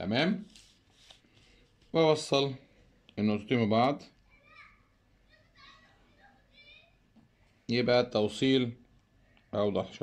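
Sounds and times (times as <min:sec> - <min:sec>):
distant children's voices: 0:04.0 - 0:07.6.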